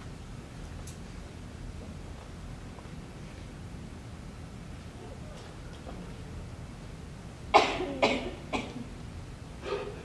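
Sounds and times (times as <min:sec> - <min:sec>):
person coughing: 0:07.6 - 0:08.9, 0:09.6 - 0:10.0.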